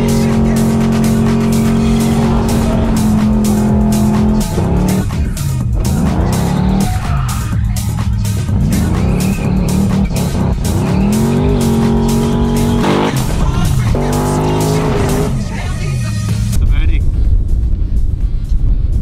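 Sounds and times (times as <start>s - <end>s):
car engine revving hard: 0.0s - 7.4s, 8.3s - 15.8s.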